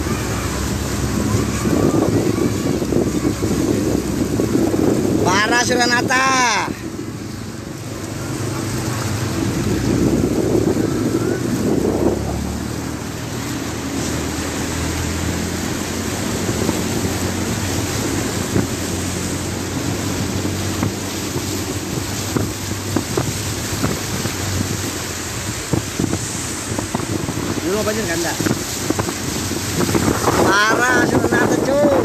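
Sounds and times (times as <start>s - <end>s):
car engine humming: 0.0s - 32.0s
water sloshing and splashing: 0.0s - 32.0s
wind buffeting microphone: 0.0s - 32.0s.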